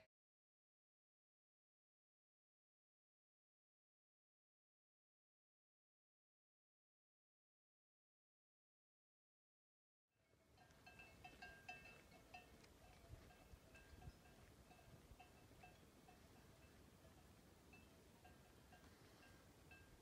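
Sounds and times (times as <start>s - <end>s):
livestock bells clinking: 10.3s - 20.0s.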